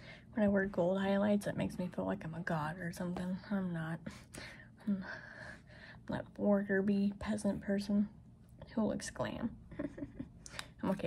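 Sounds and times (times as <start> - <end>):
woman breathing: 0.0 - 0.4, 4.0 - 6.1.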